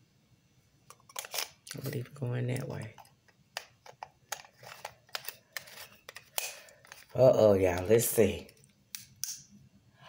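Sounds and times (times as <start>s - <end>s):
plastic flashlight and batteries clicking: 3.0s - 7.8s.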